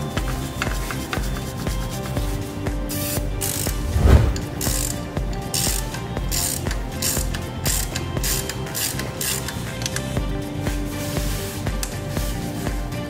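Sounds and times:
background music with beat: 0:00.0 - 0:13.0
ratchet wrench clicking: 0:03.0 - 0:03.8, 0:04.5 - 0:10.2.

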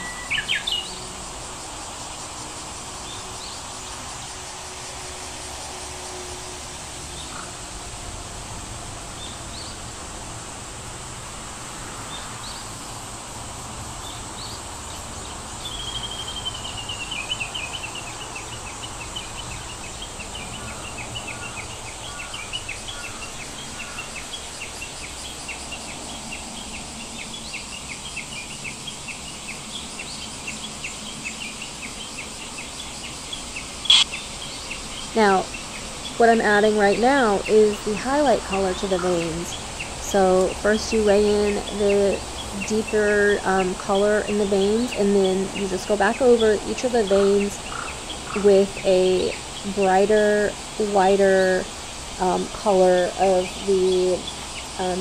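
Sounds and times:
bird chirping: 0:00.0 - 0:01.1, 0:14.0 - 0:50.1
steady background hiss: 0:00.0 - 0:55.0.

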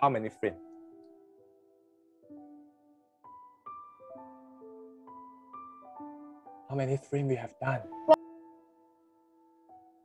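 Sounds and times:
quiet piano music: 0:00.0 - 0:10.0.

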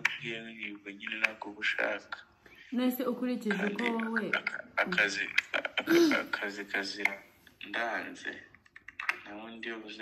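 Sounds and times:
person speaking: 0:00.0 - 0:08.5.

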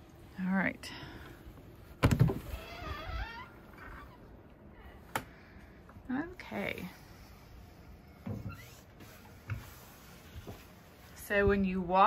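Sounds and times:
door squeaking: 0:02.0 - 0:04.3.

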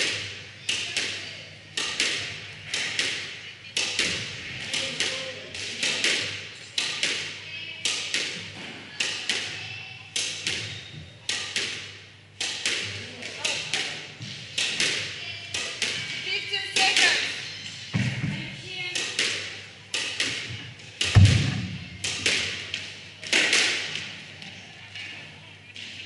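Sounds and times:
racket hitting squash ball: 0:19.0 - 0:22.6
ball hitting wall: 0:21.1 - 0:21.8.

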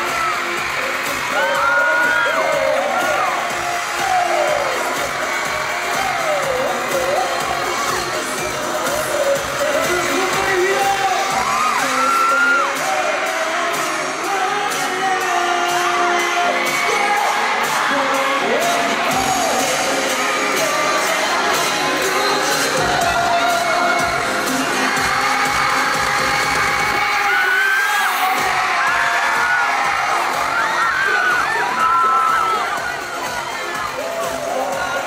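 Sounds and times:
amplified music with singing: 0:00.0 - 0:35.0
fans shouting and cheering: 0:00.0 - 0:35.0.

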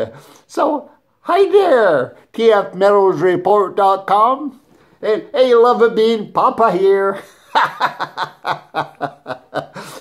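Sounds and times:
man chuckling: 0:07.2 - 0:10.0.

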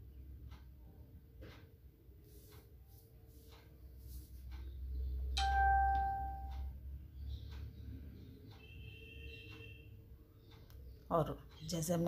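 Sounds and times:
low steady hum: 0:00.0 - 0:07.1
bell-like chime: 0:05.4 - 0:06.6.

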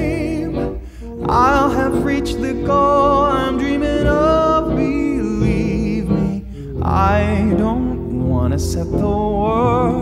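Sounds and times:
instrumental backing music: 0:00.0 - 0:10.0
man singing a ballad: 0:00.0 - 0:10.0.

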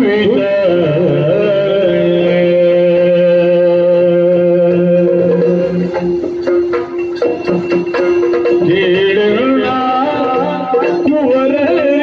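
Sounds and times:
person singing a long note: 0:00.0 - 0:05.9.

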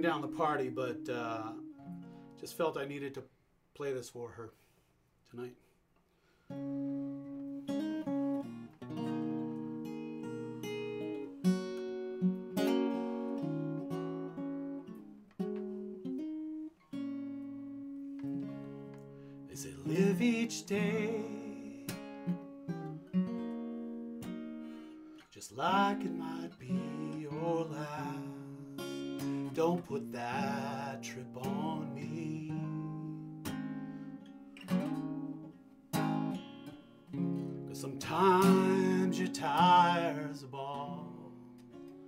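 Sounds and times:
acoustic guitar playing: 0:00.0 - 0:03.2, 0:06.4 - 0:42.0.

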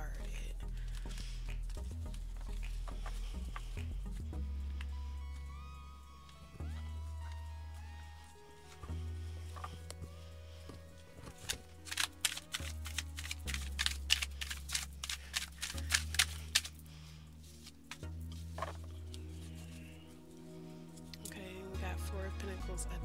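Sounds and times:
soft background music: 0:00.0 - 0:23.0
cards being shuffled: 0:08.2 - 0:19.9.

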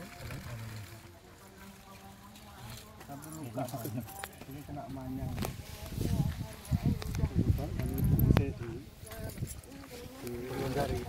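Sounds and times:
quiet voices speaking: 0:00.0 - 0:11.0.

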